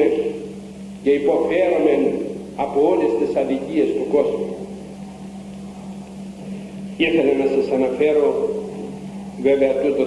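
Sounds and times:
low electrical hum: 0.0 - 10.0
tape hiss: 0.0 - 10.0.

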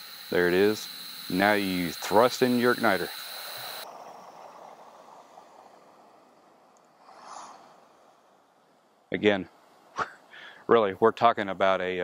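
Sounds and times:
gas stove hiss: 0.0 - 3.9.

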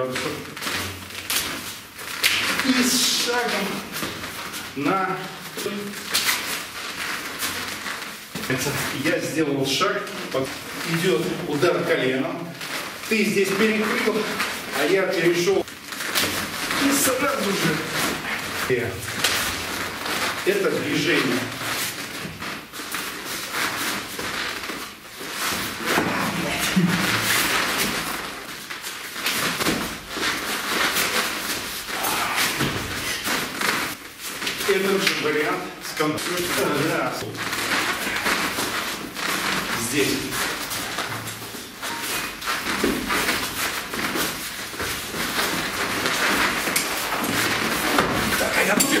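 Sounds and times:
feet shuffling on a mat: 0.2 - 49.0
clothing brushing: 0.4 - 35.3, 36.0 - 49.0
indistinct voices: 25.8 - 27.3, 31.9 - 33.2.

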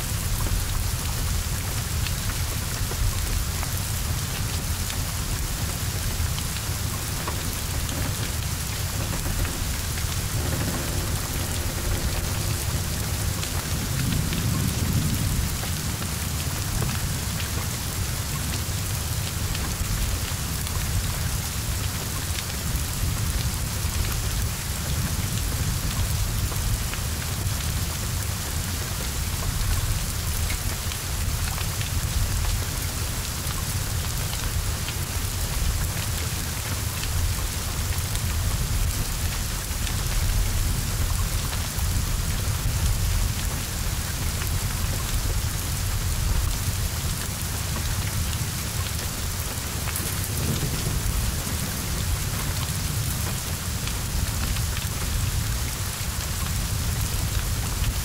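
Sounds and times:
heavy rain falling: 0.0 - 58.0
low rumble: 6.6 - 16.0.

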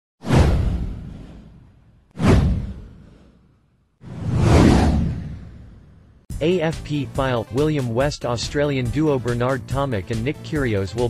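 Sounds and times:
whoosh sound effect: 2.2 - 6.1
deep low rumble: 4.1 - 6.2.

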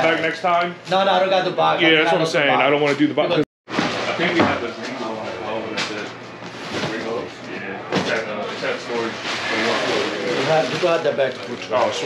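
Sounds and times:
men talking: 0.0 - 6.2, 6.8 - 12.0.

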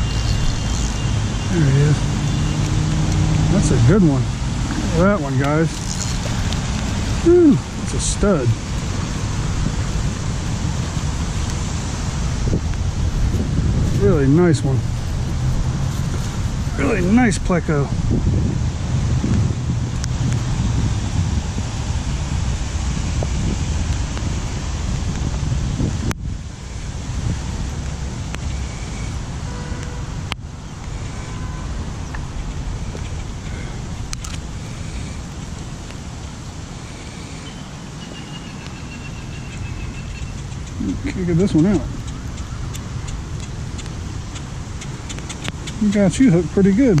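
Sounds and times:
road traffic: 0.0 - 47.0
wind buffeting microphone: 0.0 - 47.0.

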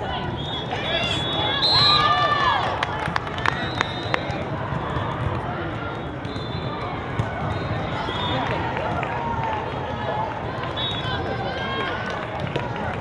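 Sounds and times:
many voices talking and calling: 0.0 - 13.0.

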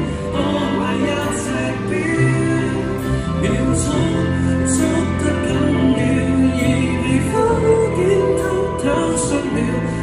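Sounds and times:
amplified pop backing track: 0.0 - 10.0
man singing into microphone: 0.0 - 10.0.

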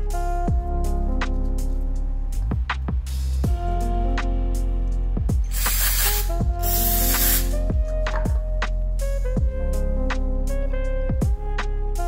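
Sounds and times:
background music: 0.0 - 12.0
aerosol can spraying: 5.5 - 8.3.

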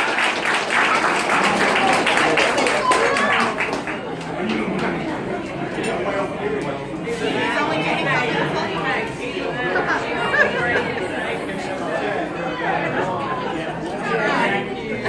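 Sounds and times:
group chatter: 0.0 - 15.0.

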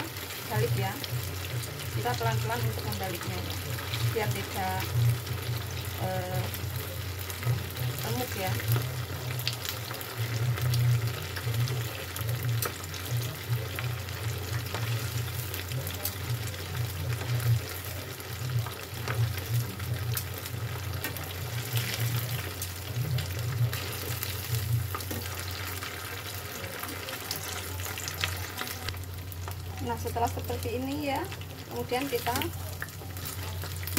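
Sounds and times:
fritters sizzling in hot oil: 0.0 - 33.9.

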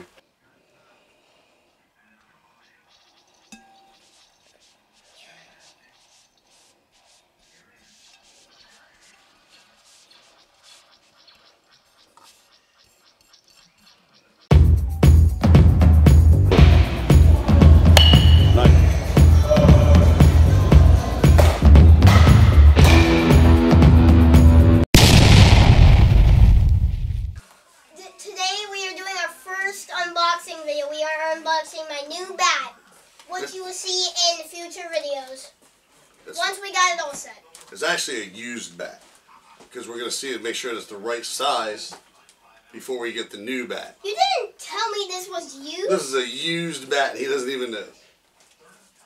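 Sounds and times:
faint metallic clink: 3.5 - 4.0, 18.0 - 18.5
loud boom impact: 25.0 - 27.4.

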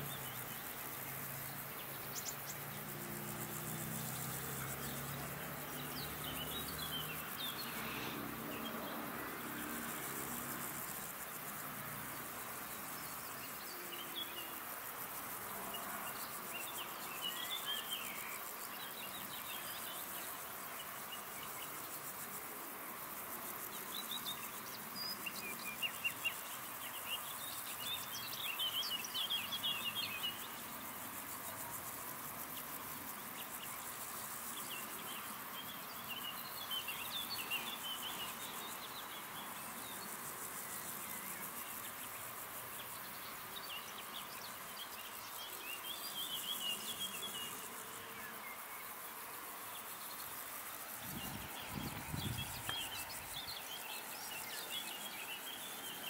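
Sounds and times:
insects chirring: 0.0 - 56.0.

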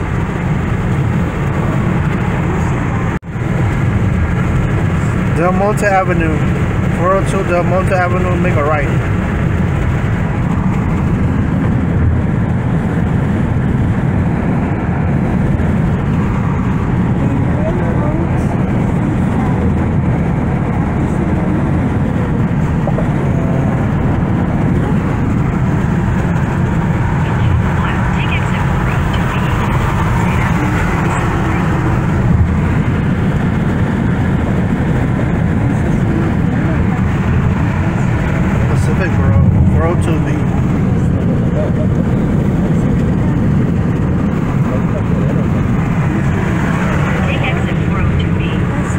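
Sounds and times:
road and wind noise in car: 0.0 - 48.9.

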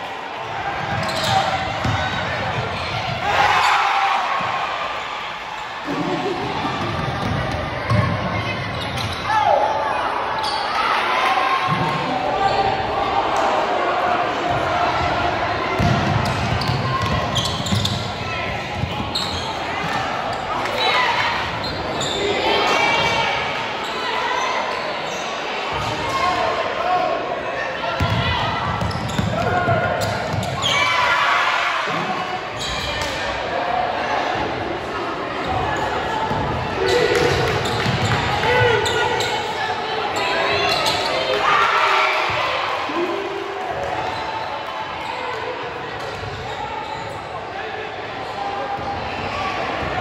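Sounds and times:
crowd chatter and shouts: 0.0 - 50.0
basketball bouncing on court: 0.8 - 2.3, 15.8 - 19.1, 28.0 - 30.6, 37.2 - 38.4.

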